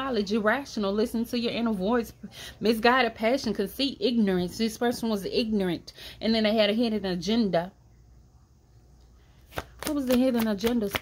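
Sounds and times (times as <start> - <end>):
woman speaking: 0.0 - 7.8, 9.8 - 11.0.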